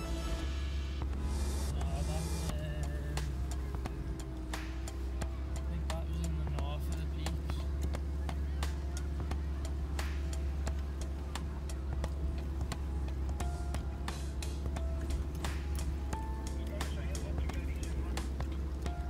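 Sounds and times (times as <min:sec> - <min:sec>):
engine and cabin drone: 0:00.0 - 0:19.0
faint voice or music: 0:01.7 - 0:19.0.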